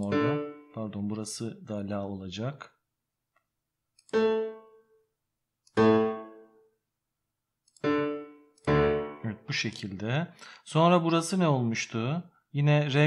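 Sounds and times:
piano bass notes: 0.0 - 1.2, 7.8 - 9.9.

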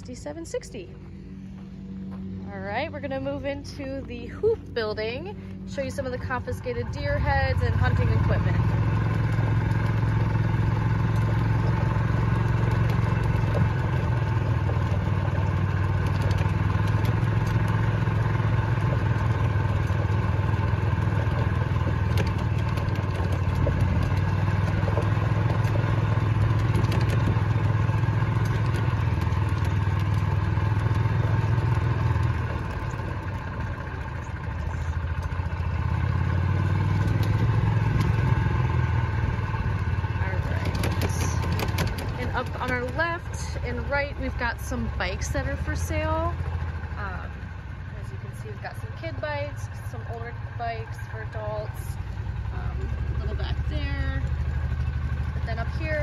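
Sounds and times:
engine humming: 0.0 - 56.0.

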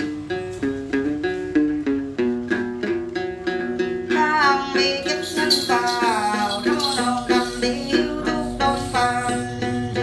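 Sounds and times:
plucked lute repeated notes: 0.0 - 10.0.

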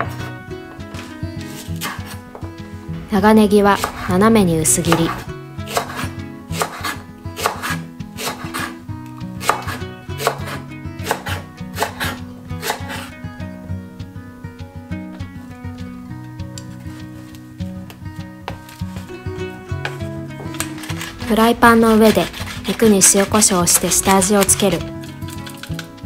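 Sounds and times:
background music: 0.0 - 26.0
knife slicing onion on board: 5.7 - 8.8, 9.4 - 13.1, 22.0 - 25.7.

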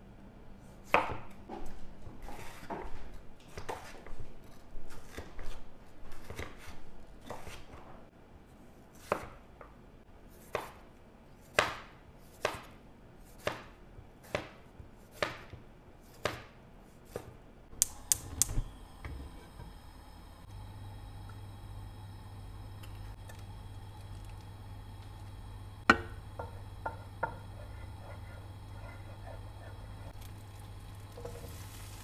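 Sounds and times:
knife chopping on wooden board: 10.4 - 10.8, 11.5 - 12.7, 13.4 - 17.4.

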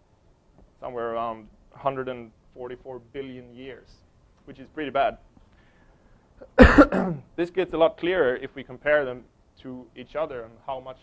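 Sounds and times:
man coughing: 6.4 - 7.3.

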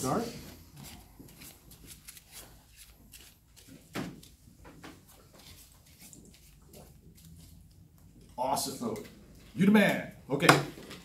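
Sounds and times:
playing cards shuffling: 0.5 - 9.1.

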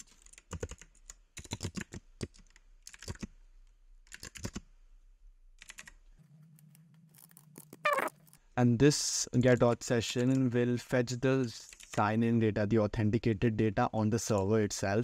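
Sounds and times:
typing on keyboard: 0.0 - 3.3, 4.0 - 4.6, 5.6 - 6.0.

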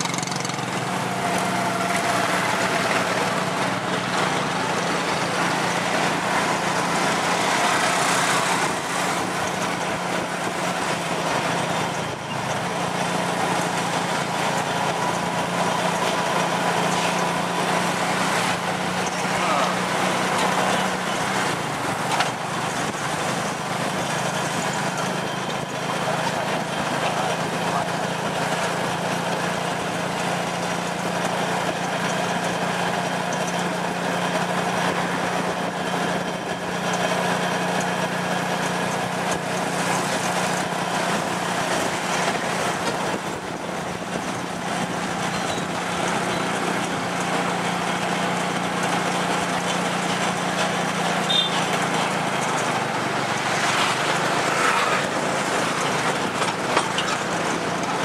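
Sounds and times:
small motorcycle engine running: 0.0 - 58.0
street traffic: 0.0 - 58.0.

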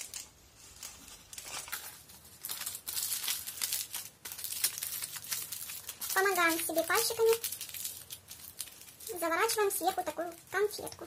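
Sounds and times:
aluminium foil crinkling: 0.0 - 11.0.

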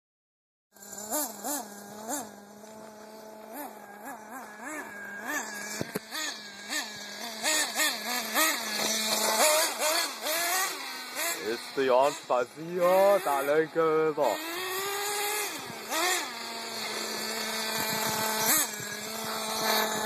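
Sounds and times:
rc buggy engine revving: 0.8 - 20.0.

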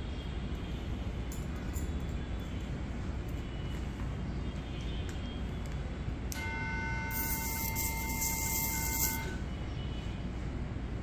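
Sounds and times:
sustained horn-like tone: 6.3 - 9.5.

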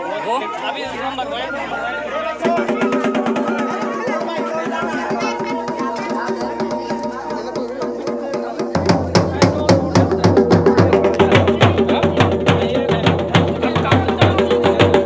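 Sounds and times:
voices: 0.0 - 15.0
dhol drum beating: 2.3 - 15.0.

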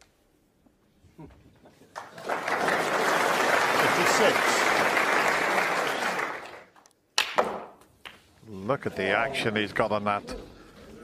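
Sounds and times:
crowd applauding: 1.9 - 6.8.

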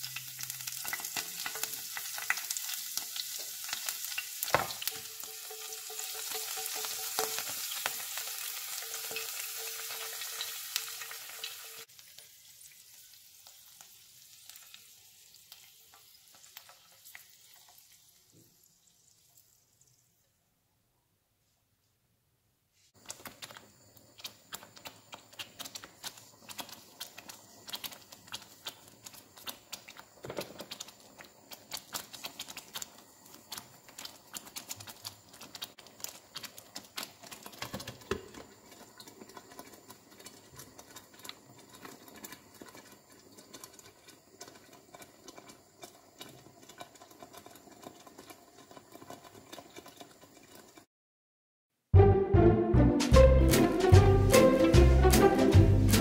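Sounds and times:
sauce bubbling and popping: 0.0 - 20.2, 23.0 - 50.9, 53.1 - 56.0.

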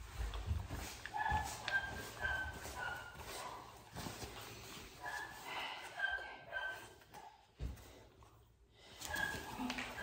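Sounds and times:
footfalls on padded floor: 0.0 - 5.2.

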